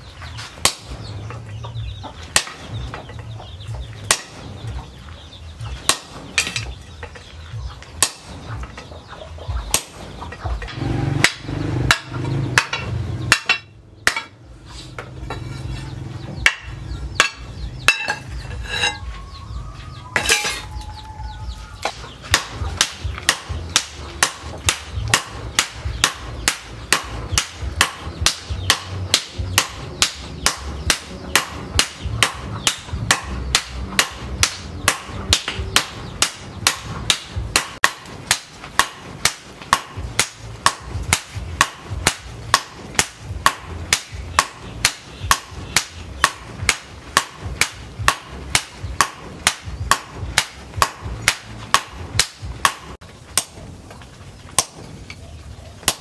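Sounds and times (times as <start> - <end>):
sledgehammers striking hot steel: 0.4 - 7.3, 7.9 - 9.0, 9.6 - 19.1, 20.2 - 20.8, 21.4 - 55.0.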